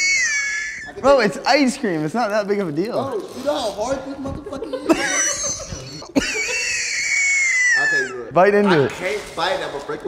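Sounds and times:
person's high-pitched squeal: 0:00.0 - 0:01.1, 0:06.4 - 0:08.3.

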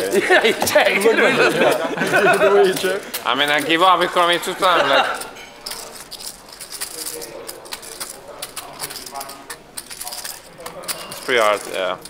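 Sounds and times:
poker chips clicking: 0:00.0 - 0:12.0.

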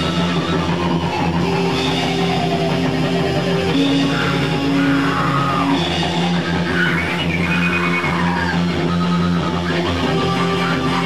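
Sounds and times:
high whining tone: 0:00.0 - 0:11.0
noise rock band playing: 0:00.0 - 0:11.0.

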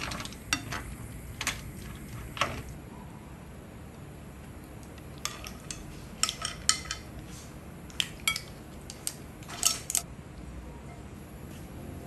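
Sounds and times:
utensils clinking on a pan: 0:05.2 - 0:07.1, 0:08.2 - 0:10.0.

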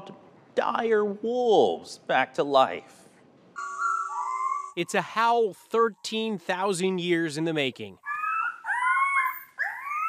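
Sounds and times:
wolf pups howling: 0:03.6 - 0:04.8, 0:08.0 - 0:10.0.

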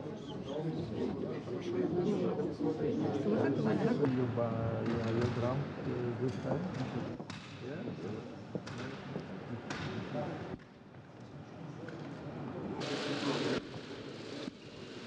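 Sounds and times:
steady hiss: 0:12.8 - 0:15.0.

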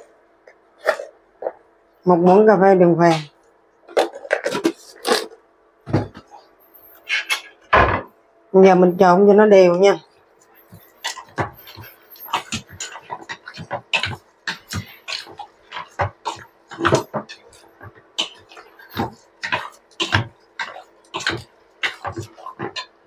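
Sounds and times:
meat squishing by hand: 0:10.2 - 0:23.0.

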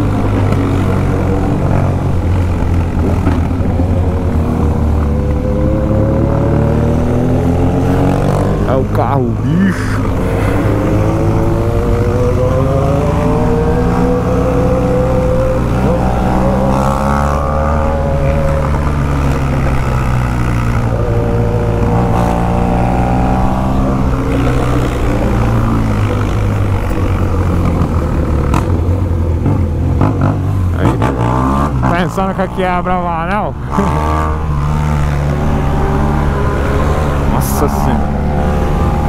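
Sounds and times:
motorcycle engine accelerating: 0:00.0 - 0:39.0
road and wind noise: 0:00.0 - 0:39.0.

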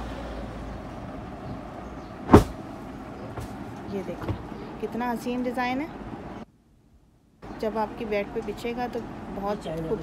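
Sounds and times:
bedsheet thumping onto floor: 0:02.3 - 0:02.6.

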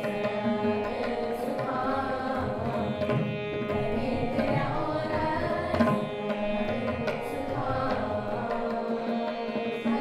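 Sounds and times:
string instruments: 0:00.0 - 0:10.0
tabla: 0:00.0 - 0:10.0
young voices singing a hymn: 0:06.8 - 0:10.0.

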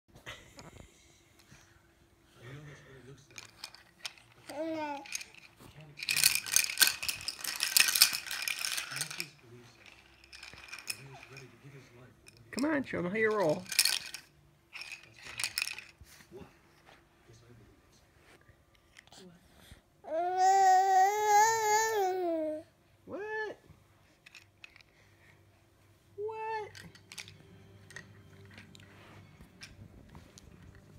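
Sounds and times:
baby rattle shaking: 0:03.3 - 0:16.2, 0:24.2 - 0:24.9, 0:26.7 - 0:30.9
baby vocal sounds: 0:04.4 - 0:05.2, 0:20.0 - 0:22.7.

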